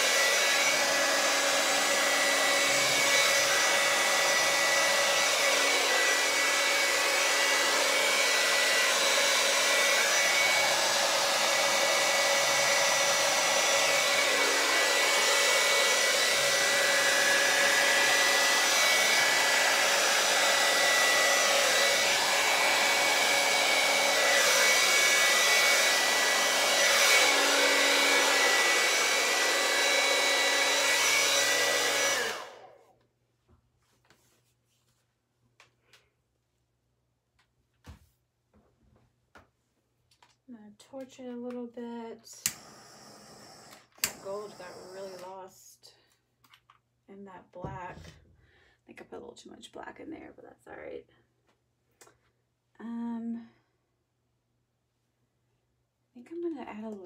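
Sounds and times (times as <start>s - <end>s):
hair dryer running: 0.0s - 33.0s, 42.3s - 45.6s.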